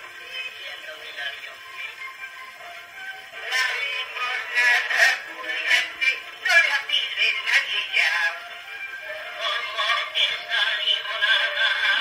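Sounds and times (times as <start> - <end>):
gramophone record of men singing: 0.0 - 2.0, 3.3 - 12.0.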